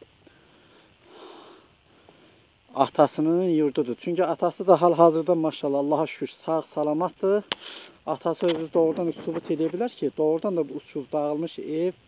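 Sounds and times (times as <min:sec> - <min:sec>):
breath through the nose: 0:07.6 - 0:08.0.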